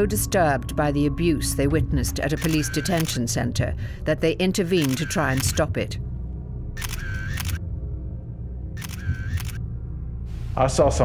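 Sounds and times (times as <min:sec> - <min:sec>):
low music drone: 0:00.0 - 0:11.0
camera shutter clicks: 0:02.4 - 0:03.2, 0:04.8 - 0:05.6, 0:06.8 - 0:07.6, 0:08.8 - 0:09.6.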